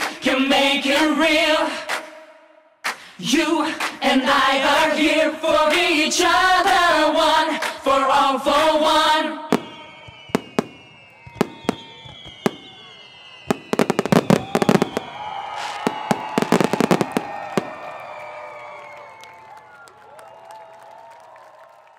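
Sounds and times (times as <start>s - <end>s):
crackling firework bursts: 9.4s - 19.5s
firework bangs: 9.5s - 18.7s.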